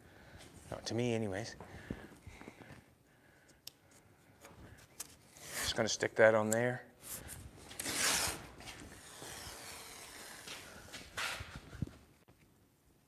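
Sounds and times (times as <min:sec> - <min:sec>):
masking tape pulled off roll: 0:07.2 - 0:11.9.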